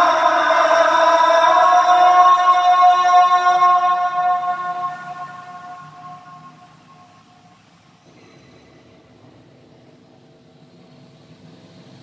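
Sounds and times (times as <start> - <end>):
muezzin singing call to prayer: 0.0 - 7.6.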